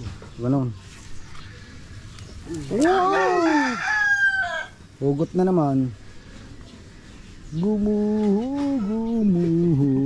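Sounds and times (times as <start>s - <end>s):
rooster crowing: 2.7s - 4.8s, 8.5s - 10.0s.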